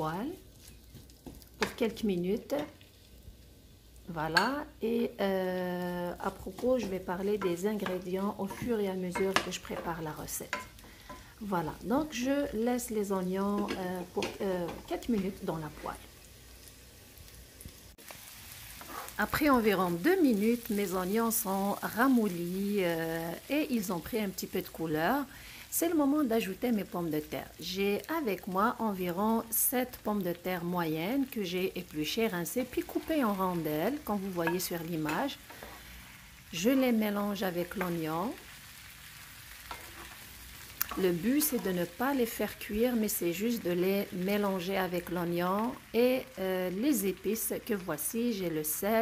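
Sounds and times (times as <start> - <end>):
onions sizzling in a pan: 0.0 - 49.0
potatoes frying in oil: 0.0 - 49.0.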